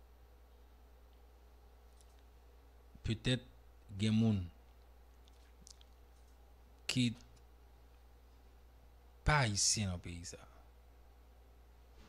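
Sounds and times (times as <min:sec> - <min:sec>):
low steady hum: 0:00.0 - 0:12.0
man speaking: 0:03.0 - 0:04.6, 0:06.9 - 0:07.3, 0:09.2 - 0:10.6.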